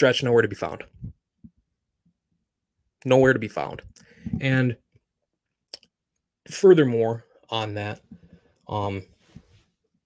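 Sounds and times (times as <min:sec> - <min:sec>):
person speaking: 0:03.0 - 0:04.8, 0:06.5 - 0:09.5.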